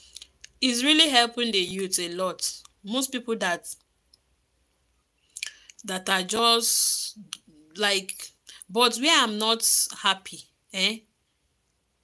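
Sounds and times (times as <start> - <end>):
woman speaking: 0.6 - 3.8, 5.8 - 11.1.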